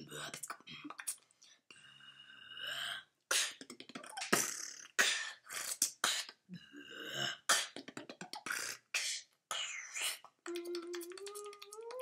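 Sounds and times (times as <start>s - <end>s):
drawn-out pitched vocal sound: 1.8s - 12.0s
boy beatboxing: 3.3s - 12.0s.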